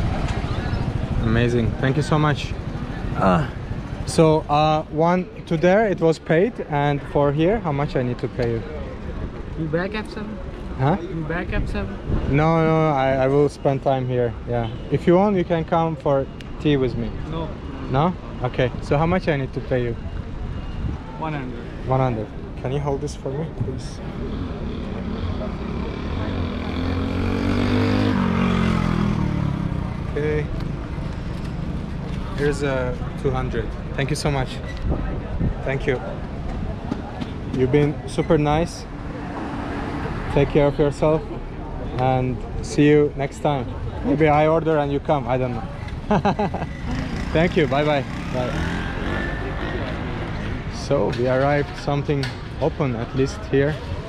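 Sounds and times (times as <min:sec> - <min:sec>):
traffic engine rumble: 0:00.0 - 0:54.0
motor vehicle engine passing by: 0:24.2 - 0:33.6, 0:38.6 - 0:40.8, 0:46.4 - 0:51.6.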